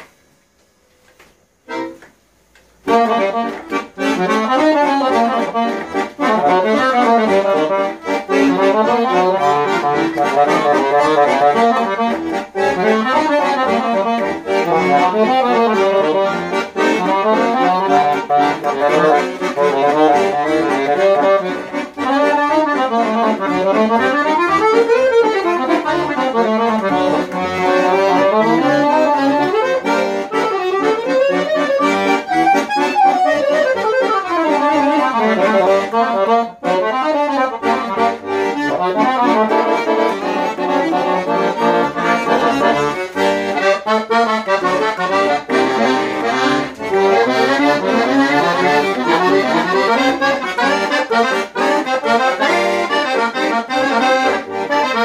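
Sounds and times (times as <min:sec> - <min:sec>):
piano accordion melody: 0:00.0 - 0:55.0.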